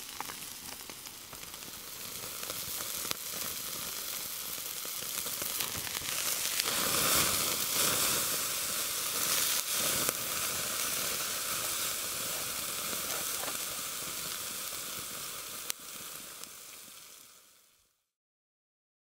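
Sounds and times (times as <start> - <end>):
campfire crackling and hissing: 0.0 - 18.0
sharp pop of burning wood: 12.3 - 13.8.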